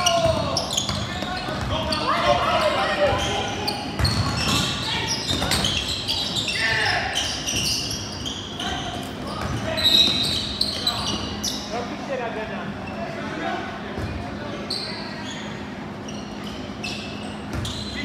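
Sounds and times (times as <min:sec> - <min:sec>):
basketball bouncing on court: 0:00.0 - 0:01.9, 0:03.9 - 0:05.8
short high squeaks: 0:03.2 - 0:11.8.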